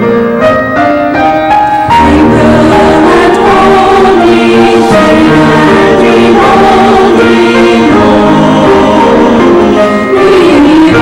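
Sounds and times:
mixed choir singing: 0:01.9 - 0:11.0.

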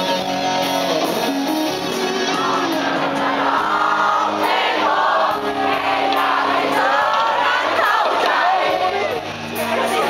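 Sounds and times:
live rock band playing: 0:00.0 - 0:10.0
crowd singing along: 0:01.8 - 0:10.0.

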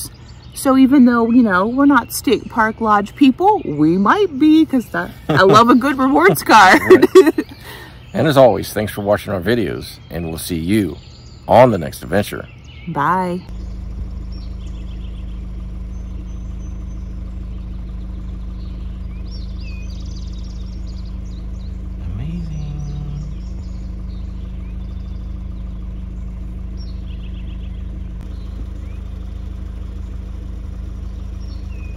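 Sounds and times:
birds chirping: 0:00.0 - 0:31.9
vehicle engine idling: 0:00.0 - 0:31.9.

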